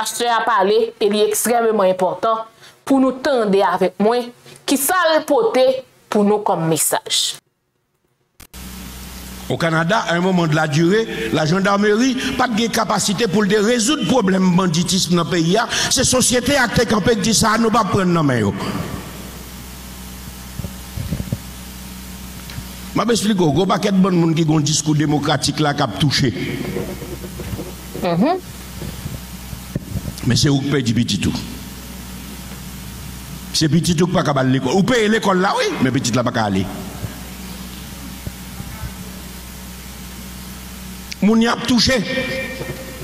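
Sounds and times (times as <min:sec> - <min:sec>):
low electrical hum: 0:00.0 - 0:43.0
steady hiss: 0:08.4 - 0:43.0.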